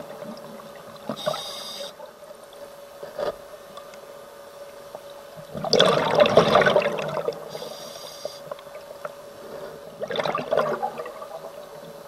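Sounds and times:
faint steady hum: 0.0 - 12.0
air hissing from regulator: 1.1 - 2.0, 7.5 - 8.5
underwater bubbling: 4.4 - 12.0.

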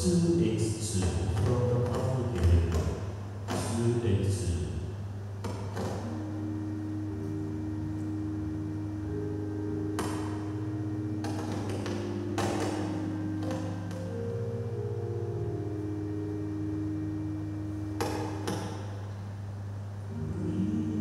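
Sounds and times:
soft instrumental music: 5.4 - 21.0.

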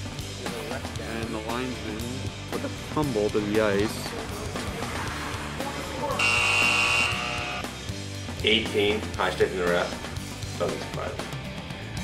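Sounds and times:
background music: 0.0 - 12.0
shrill high tone: 6.2 - 7.6.

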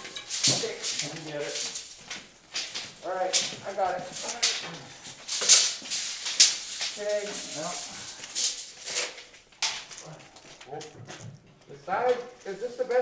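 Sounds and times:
metal hand truck scraping on concrete: 0.0 - 10.8.

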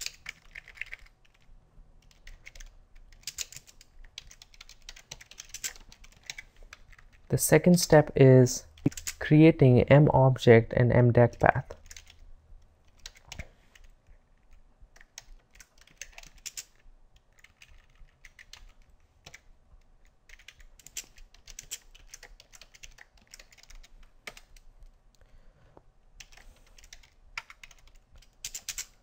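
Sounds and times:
typing on computer keyboard: 0.0 - 7.3, 8.8 - 9.2, 11.3 - 12.2, 12.8 - 24.7, 26.2 - 29.0.

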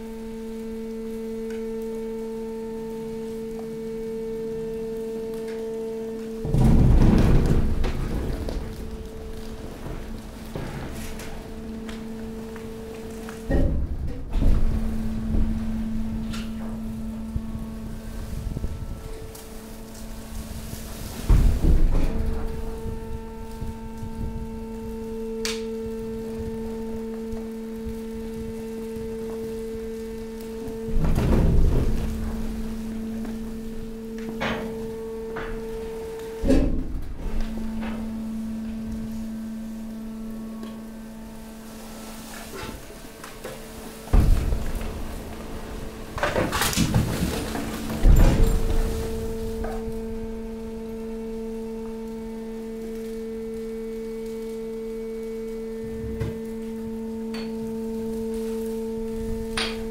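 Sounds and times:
hydraulic pump hum: 0.0 - 59.9
heavy compactor thuds: 6.4 - 25.1, 30.5 - 39.9, 41.8 - 52.4.

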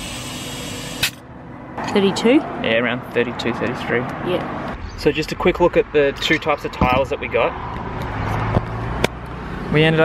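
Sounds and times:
compressed air hissing into tyre: 0.0 - 1.2.

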